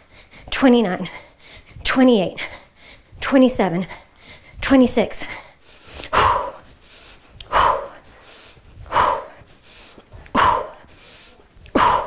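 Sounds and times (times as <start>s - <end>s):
woman's breathy calls: 11.8s - 12.0s.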